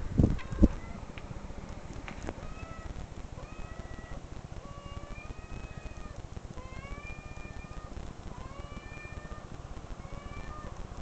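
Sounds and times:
cat meowing: 2.4 - 10.8.

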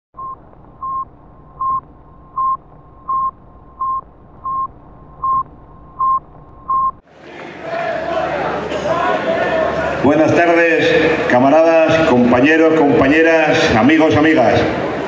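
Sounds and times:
low hum: 0.2 - 7.0
live event noise: 0.2 - 15.0.

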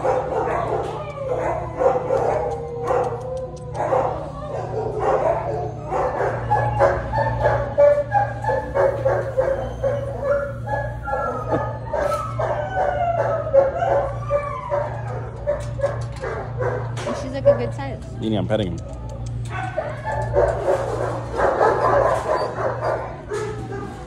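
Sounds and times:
dogs barking and yipping: 0.0 - 18.2, 18.8 - 24.0
dogs howling and whining: 0.0 - 18.2, 18.8 - 24.0
steady low hum: 0.0 - 24.0.

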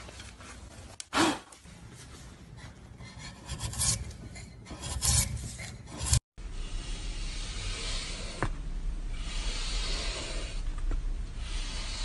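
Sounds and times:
blade scraping wooden block: 3.3 - 6.2.

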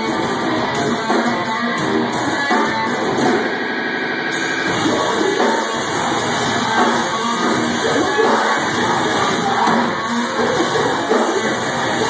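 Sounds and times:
live heavy band playing: 0.0 - 12.0.

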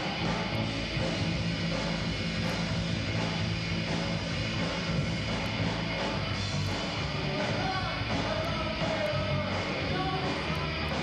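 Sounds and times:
droning distorted guitar chord: 0.0 - 11.0
rock band playing loud: 0.0 - 11.0.

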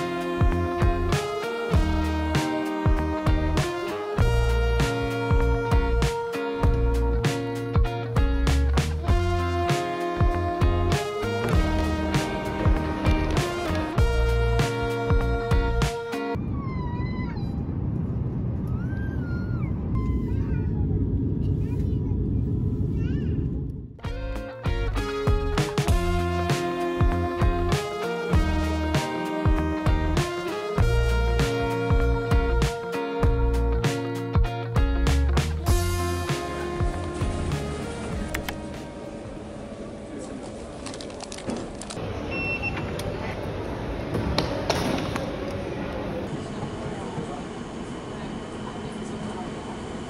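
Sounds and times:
airplane cabin drone: 9.0 - 24.0, 35.6 - 50.0
station noise rumble: 35.6 - 50.0
card reader beep: 42.3 - 43.0.

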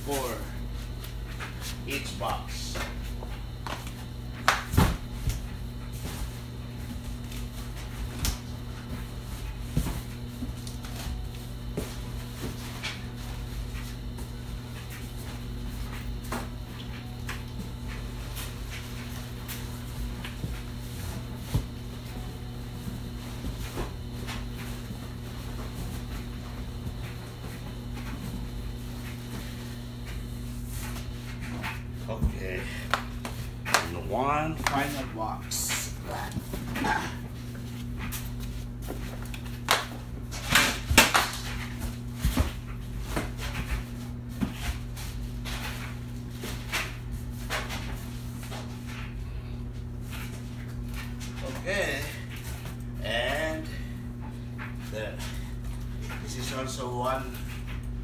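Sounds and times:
steady low hum: 0.0 - 58.0.

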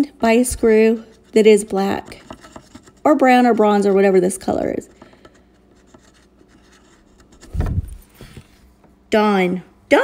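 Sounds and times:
small scratches: 1.0 - 3.1, 5.1 - 8.6
marker rubbing on screw head: 5.3 - 7.6.

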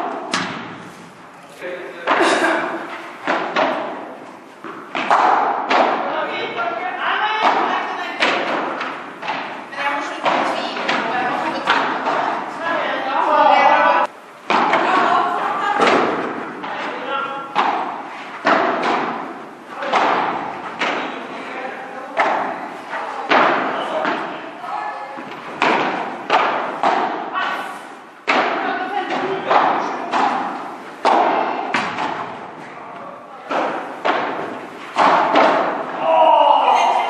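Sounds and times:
rackets striking ball: 0.0 - 1.2, 2.0 - 13.1, 14.0 - 24.6, 25.2 - 37.0.

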